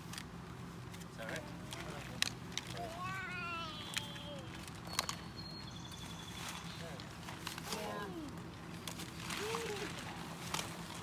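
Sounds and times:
toddler whining: 0:02.8 - 0:04.5.

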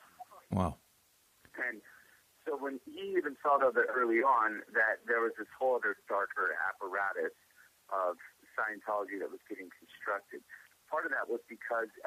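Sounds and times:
person talking: 0:00.2 - 0:00.8.

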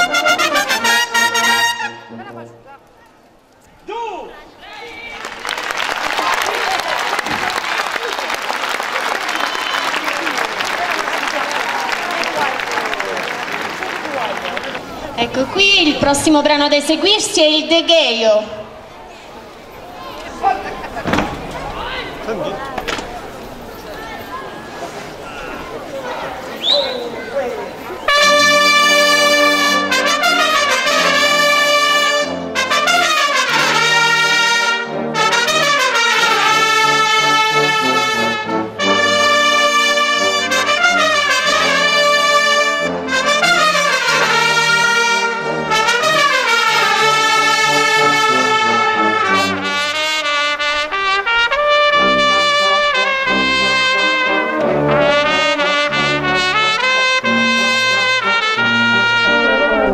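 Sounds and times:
brass fanfare: 0:00.0 - 0:02.7, 0:28.0 - 0:59.9.

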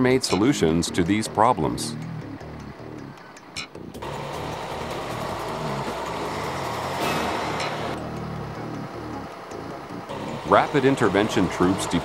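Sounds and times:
truck engine rumbling: 0:00.0 - 0:12.0.

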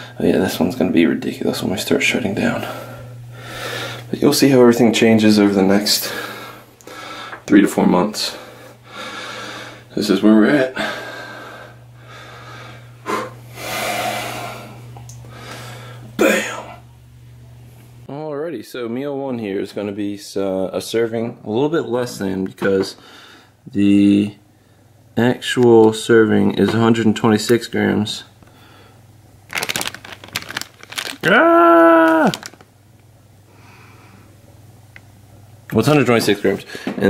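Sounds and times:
steady low hum: 0:00.0 - 0:37.0
man breathing hard: 0:02.6 - 0:04.1, 0:06.0 - 0:07.5, 0:08.3 - 0:09.9, 0:10.8 - 0:16.1, 0:23.0 - 0:23.6, 0:28.5 - 0:29.0
plastic bag crinkling: 0:29.4 - 0:32.8.

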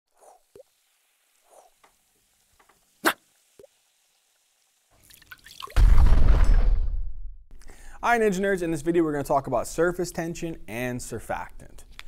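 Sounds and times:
cartoon drips and plops: 0:05.0 - 0:05.8
low cartoon explosion: 0:05.8 - 0:07.4.

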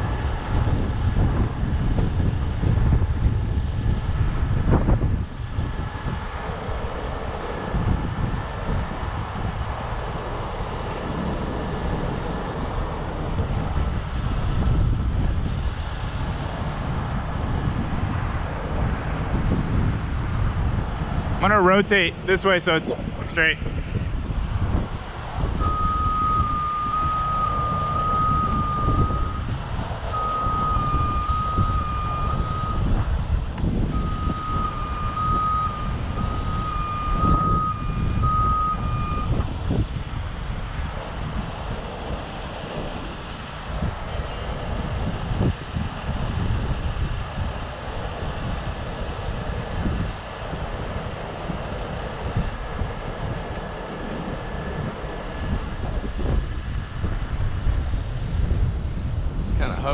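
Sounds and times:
diesel engine running: 0:00.0 - 0:59.9
vehicle warning beeper: 0:25.6 - 0:29.5, 0:30.1 - 0:32.9, 0:33.9 - 0:39.4.

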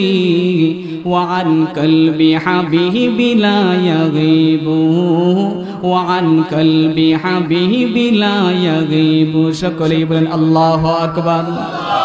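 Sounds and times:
man chanting into a microphone: 0:00.0 - 0:11.7.

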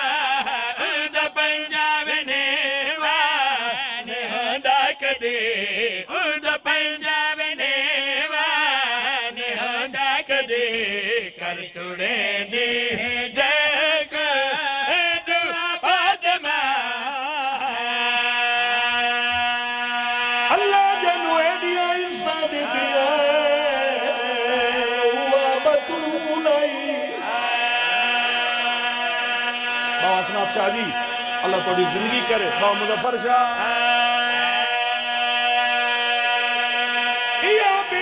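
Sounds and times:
men singing a sustained note: 0:00.0 - 0:38.0
voice sliding over chant: 0:20.4 - 0:38.0.

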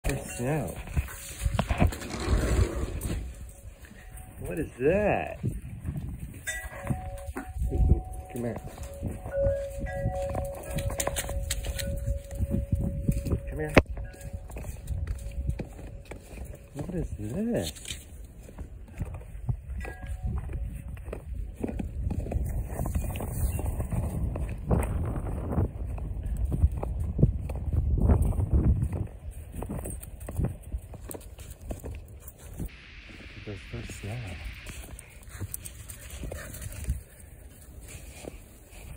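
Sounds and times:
bell-like ringing tone: 0:00.0 - 0:01.4, 0:06.4 - 0:16.8, 0:19.8 - 0:20.6
footsteps crunching in snow: 0:00.0 - 0:38.9.

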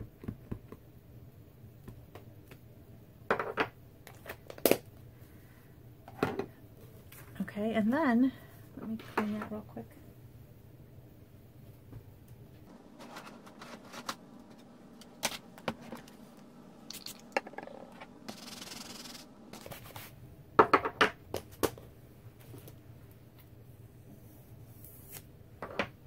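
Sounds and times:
scratching and rubbing on scrubber: 0:18.3 - 0:20.1.

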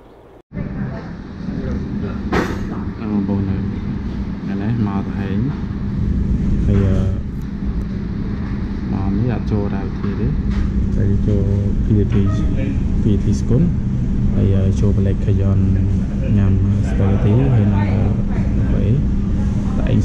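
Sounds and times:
steady low hum: 0:00.0 - 0:20.0
people talking: 0:00.6 - 0:05.6, 0:06.6 - 0:07.4, 0:08.9 - 0:10.4, 0:11.0 - 0:20.0.

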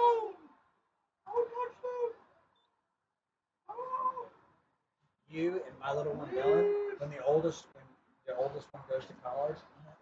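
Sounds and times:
high-pitched vocal cry: 0:03.7 - 0:04.4.

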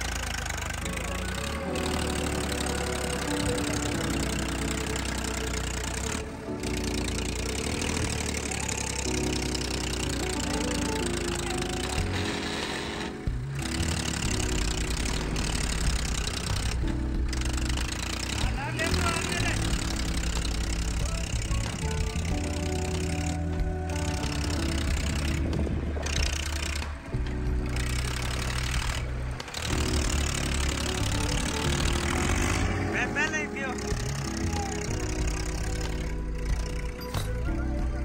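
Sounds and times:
tractor diesel engine running: 0:00.0 - 0:38.0
song with singing: 0:00.5 - 0:13.4, 0:20.9 - 0:25.9, 0:30.9 - 0:38.0.

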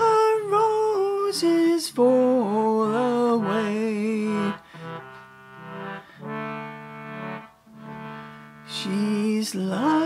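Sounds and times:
concertina playing chords: 0:02.1 - 0:10.0.

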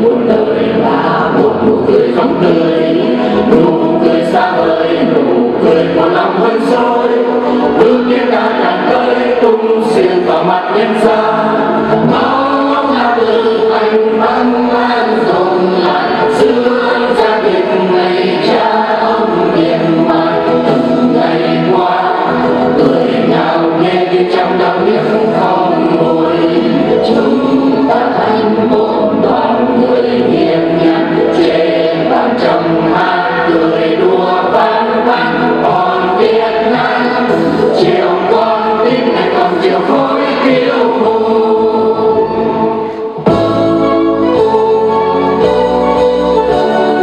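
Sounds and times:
mixed choir singing: 0:00.0 - 0:47.0.

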